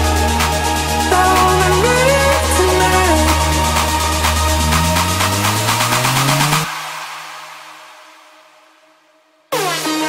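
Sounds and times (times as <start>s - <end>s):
electronic dance music: 0.0s - 8.8s, 9.5s - 10.0s.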